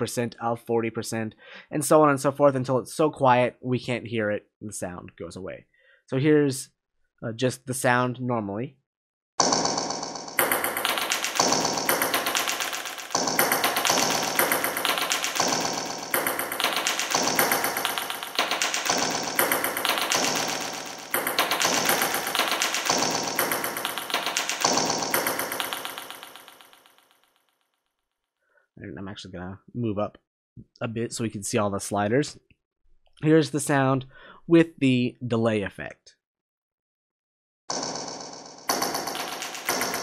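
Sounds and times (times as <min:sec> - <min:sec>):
rapid rattling hits: 0:09.4 - 0:27.0, 0:37.7 - 0:40.0.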